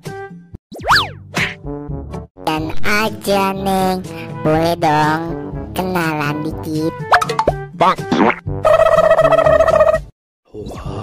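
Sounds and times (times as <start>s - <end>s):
cartoon pop with rising slide: 0.7s - 1.6s.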